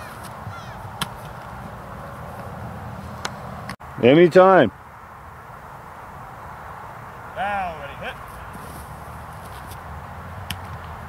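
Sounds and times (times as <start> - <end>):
feet scuffing on grass: 8.1 - 9.8.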